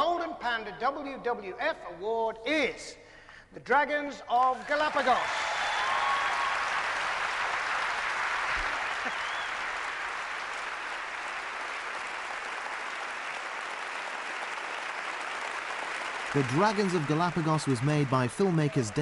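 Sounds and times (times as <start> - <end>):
audience applauding: 4.7 - 19.0.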